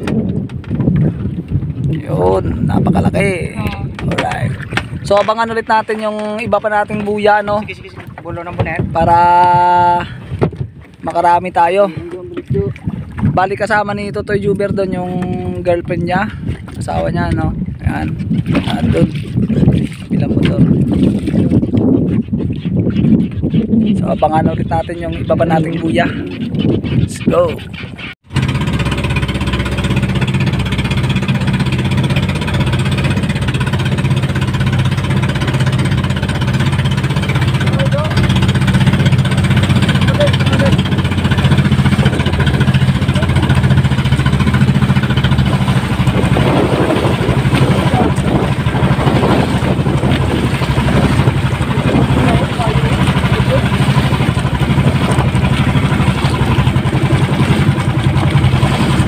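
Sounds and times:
boat engine running: 0:00.0 - 0:59.0
water splashing against hull: 0:00.0 - 0:59.0.

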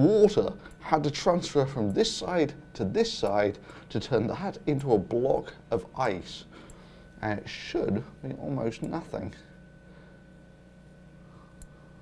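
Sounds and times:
faint steady hum: 0:00.0 - 0:12.0
thin high whine: 0:00.0 - 0:12.0.

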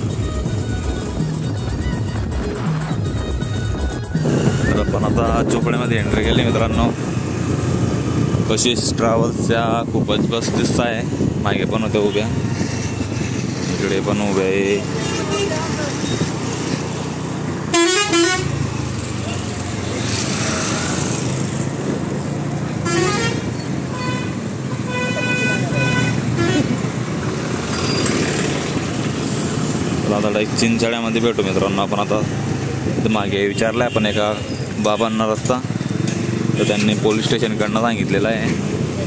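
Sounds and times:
engine and road noise: 0:00.0 - 0:39.0
vehicle horns honking: 0:14.9 - 0:16.2, 0:17.7 - 0:18.6, 0:22.8 - 0:26.8.

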